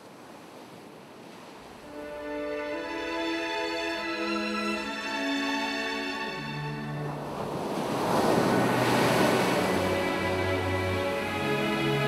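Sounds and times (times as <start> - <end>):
sea waves rushing: 0.0 - 12.0
wind: 0.0 - 12.0.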